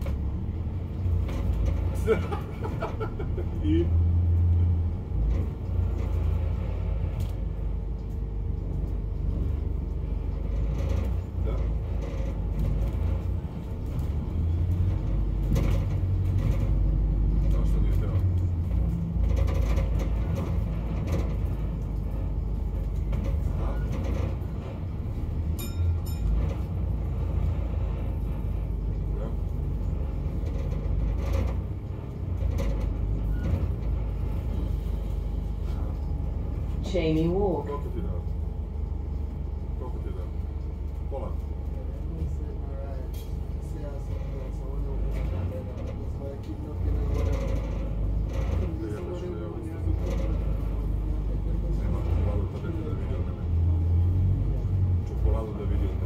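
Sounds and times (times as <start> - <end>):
bus engine and road rumble: 0.0 - 56.0.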